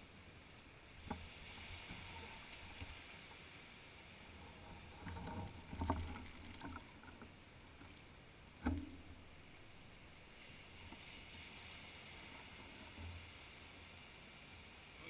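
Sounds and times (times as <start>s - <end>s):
small waves on sandy beach: 0.0s - 6.5s, 7.4s - 15.0s.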